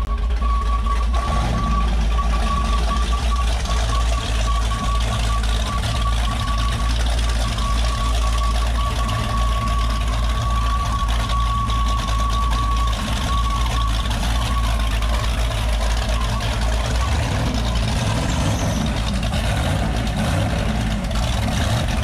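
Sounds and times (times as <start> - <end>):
boat engines idling: 0.0 - 22.0.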